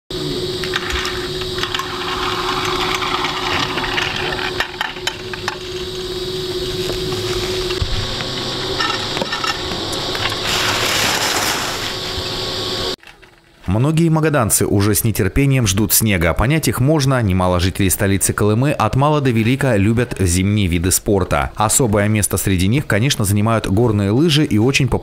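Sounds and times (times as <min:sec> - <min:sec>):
ski lift machinery humming: 0:00.1 - 0:13.0
skis sliding on snow: 0:10.3 - 0:12.3.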